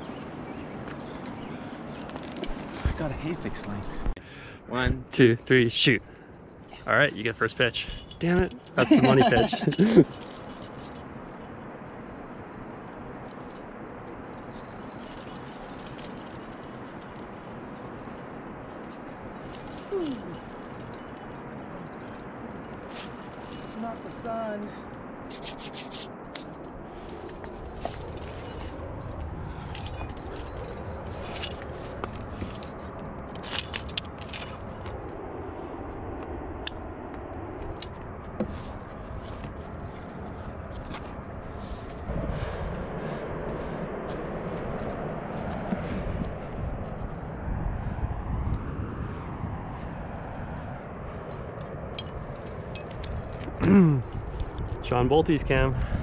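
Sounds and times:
climbing gear clinking: 0:00.0 - 0:04.0, 0:06.0 - 0:24.5, 0:25.3 - 0:35.4, 0:36.0 - 0:42.0, 0:51.3 - 0:55.1
steady low rumble: 0:00.0 - 0:56.0.

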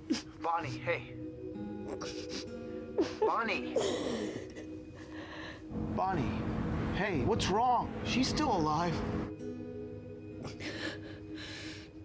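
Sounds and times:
soft background music: 0:00.0 - 0:12.0
woman crying: 0:01.7 - 0:05.7, 0:10.4 - 0:12.0
gasping breaths: 0:10.4 - 0:12.0.

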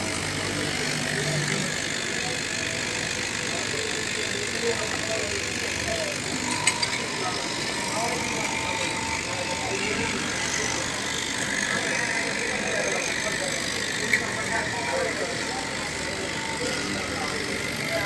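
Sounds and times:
electric cloth cutting machine: 0:00.0 - 0:18.0.

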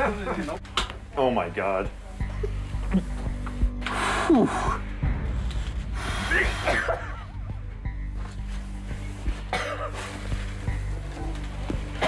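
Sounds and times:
background music: 0:00.0 - 0:12.0
man coughing: 0:06.3 - 0:07.4, 0:09.5 - 0:10.0.

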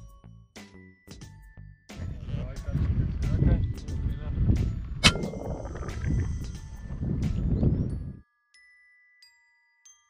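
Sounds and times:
wind rumbling on microphone: 0:02.0 - 0:08.2.

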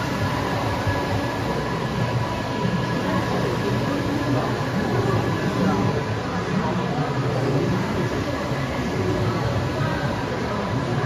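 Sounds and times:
printer running: 0:00.0 - 0:11.0.

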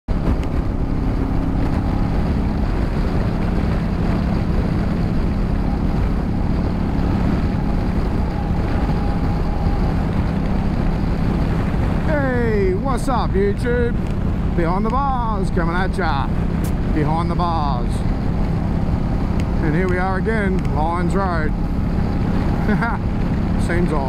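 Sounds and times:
motorcycle engine cruising: 0:00.1 - 0:24.0
wind buffeting microphone: 0:00.1 - 0:24.0.

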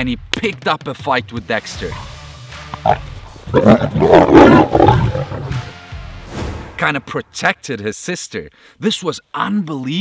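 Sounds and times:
lions snarling and growling: 0:01.8 - 0:05.8.

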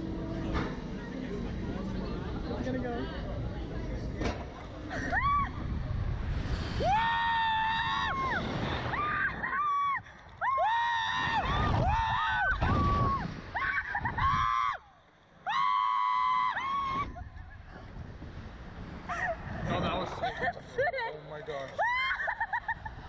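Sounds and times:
low rumble: 0:00.0 - 0:10.6.

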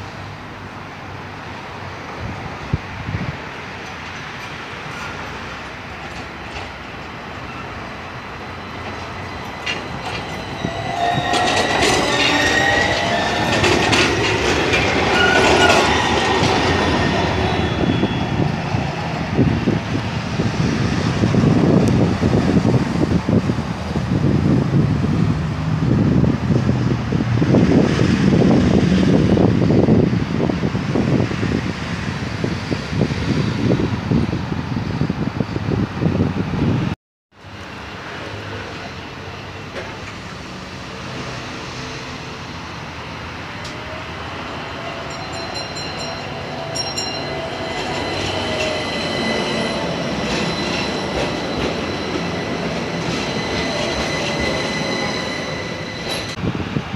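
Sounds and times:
steel wheels rumbling on rails: 0:02.2 - 0:56.9
tram squealing: 0:03.8 - 0:23.6, 0:37.5 - 0:56.4.

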